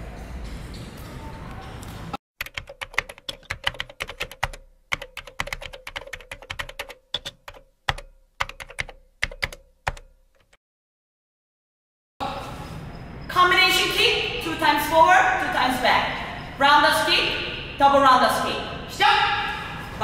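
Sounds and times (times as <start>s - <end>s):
computer keyboard typing: 2.4s - 10.6s.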